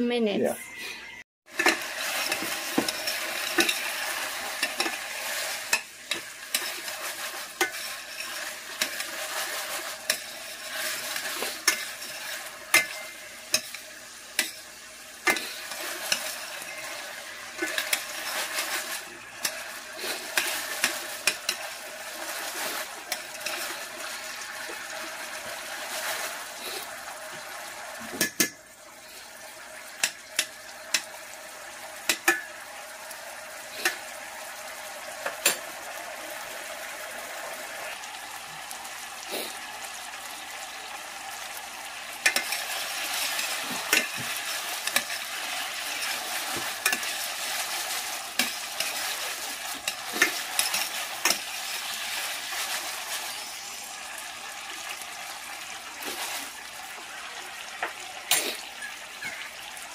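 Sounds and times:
food sizzling in a pan: 0.2 - 59.9
utensil clicking on pan: 1.6 - 4.0, 7.6 - 13.8, 14.4 - 14.6, 30.0 - 31.1, 32.1 - 32.5, 42.2 - 47.8, 48.4 - 51.6.

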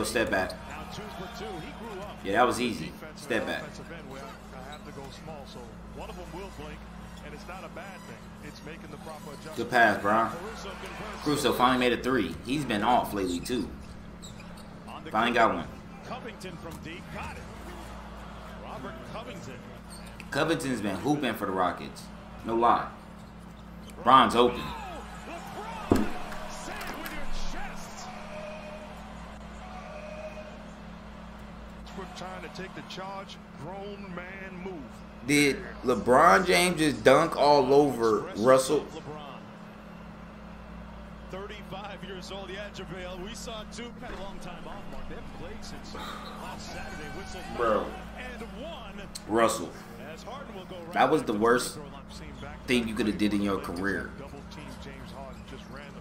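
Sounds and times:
arena crowd noise: 0.0 - 56.0
basketball game sounds: 0.0 - 56.0
commentator talking: 41.6 - 56.0.

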